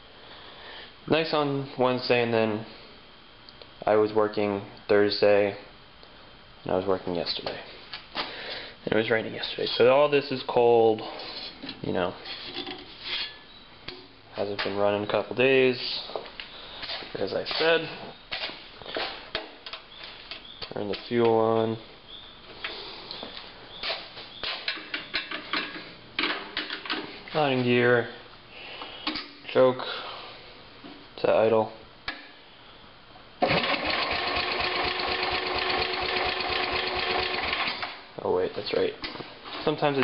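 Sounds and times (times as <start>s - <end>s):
soft shuffling and handling: 14.4s - 19.3s, 38.4s - 40.0s
engine cranking on electric starter: 33.4s - 38.0s.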